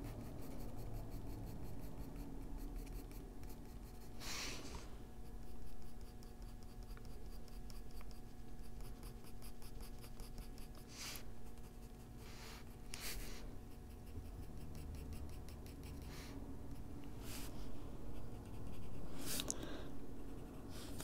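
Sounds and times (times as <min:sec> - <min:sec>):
pencil scratching on paper: 0:00.0 - 0:04.4, 0:05.1 - 0:17.5, 0:18.1 - 0:19.4, 0:20.1 - 0:21.0.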